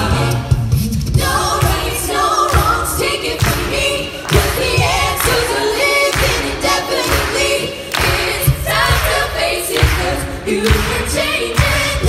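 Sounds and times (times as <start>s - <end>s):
mixed voices singing a cappella: 0.0s - 12.0s.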